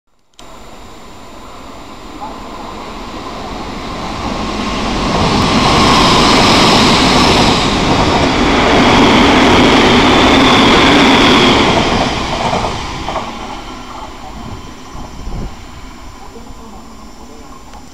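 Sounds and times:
electric train passing at speed: 0.2s - 17.9s.

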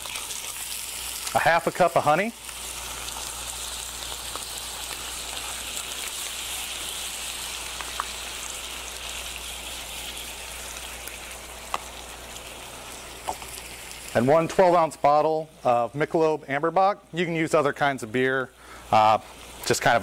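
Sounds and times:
sausage sizzling in a skillet: 0.0s - 20.0s.

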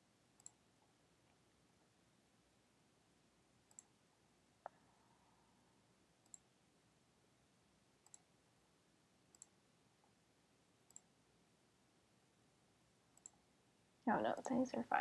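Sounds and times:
computer mouse clicks: 0.4s - 0.6s, 3.7s - 3.9s, 6.2s - 6.5s, 8.0s - 8.3s, 9.3s - 9.6s, 10.9s - 11.1s, 13.1s - 13.4s.

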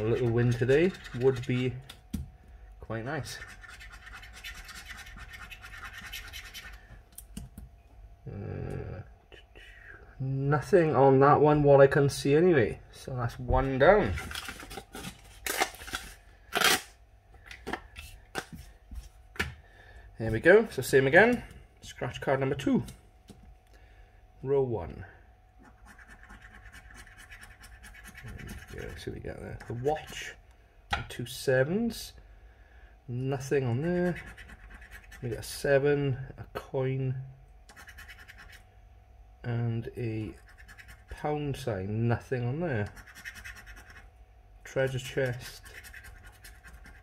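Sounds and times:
coin scratching scratch card: 0.0s - 1.8s, 3.2s - 6.8s, 25.6s - 29.0s, 34.0s - 35.4s, 37.7s - 38.6s, 40.3s - 41.1s, 42.9s - 44.1s, 44.8s - 47.0s.

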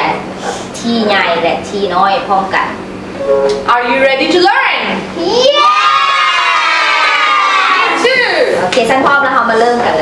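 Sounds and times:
children shouting yeah together: 5.2s - 8.5s.

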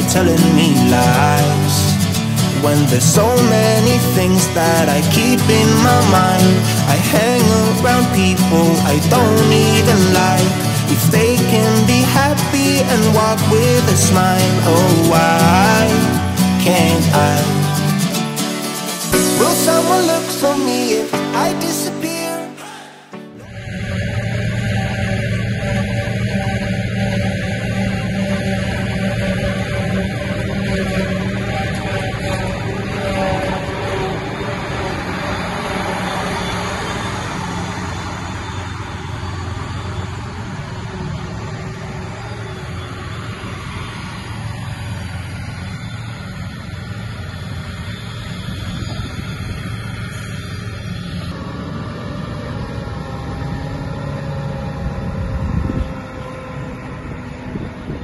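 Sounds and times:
diesel engines running: 0.0s - 58.0s.

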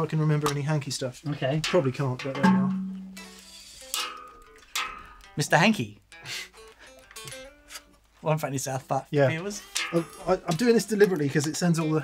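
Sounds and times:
electric guitar note ringing: 2.4s - 5.4s, 9.4s - 10.4s.

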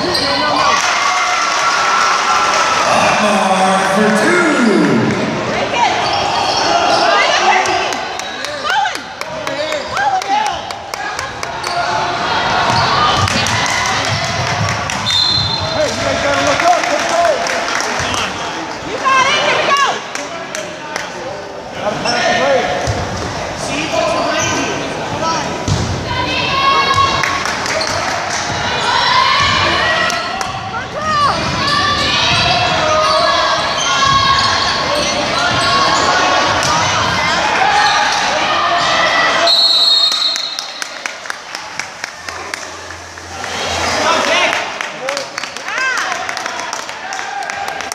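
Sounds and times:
people shouting and cheering: 0.0s - 20.0s, 25.3s - 47.9s
referee's whistle: 15.0s - 15.8s, 39.4s - 40.9s.

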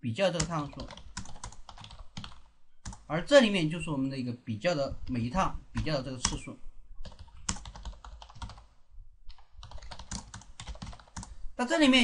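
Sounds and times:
computer keyboard typing: 0.4s - 3.1s, 5.8s - 8.7s, 9.3s - 11.4s.

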